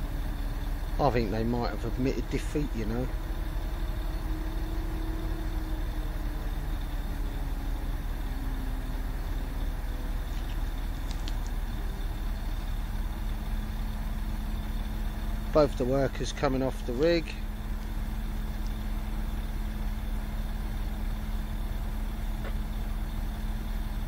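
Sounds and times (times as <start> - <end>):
engine idling: 0.0 - 24.0
faint hum: 0.0 - 24.0.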